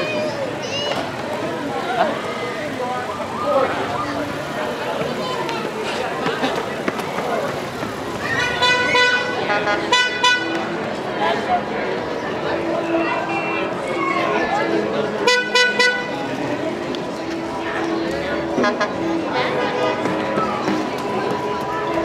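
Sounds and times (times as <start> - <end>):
crowd chatter: 0.0 - 22.0
vehicle horn honking: 8.4 - 10.6, 15.2 - 16.2.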